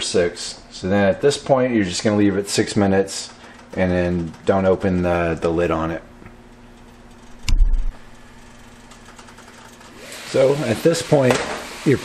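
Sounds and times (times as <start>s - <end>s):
steady low hum: 0.0s - 9.8s.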